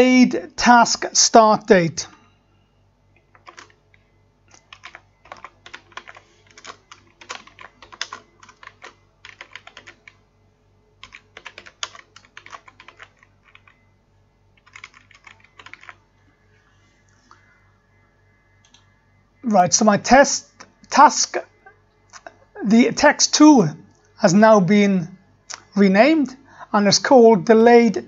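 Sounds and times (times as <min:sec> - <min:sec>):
keyboard typing: 0:03.2 - 0:10.2, 0:11.0 - 0:13.8, 0:14.6 - 0:16.0, 0:18.6 - 0:18.9.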